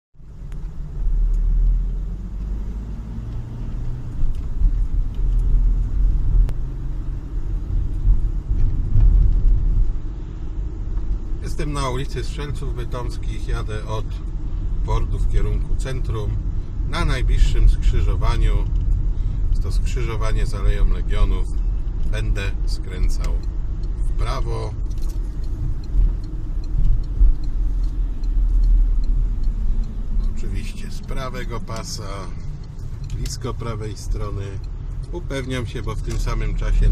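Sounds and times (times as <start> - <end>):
car engine and tyres rumbling: 0.1 - 36.9
turn indicator ticking: 0.2 - 36.9.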